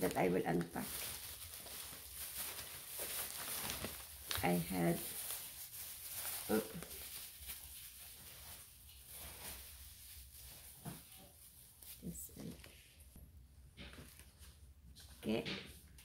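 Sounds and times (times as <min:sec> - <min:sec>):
plastic bags rustling: 0:00.0 - 0:13.2.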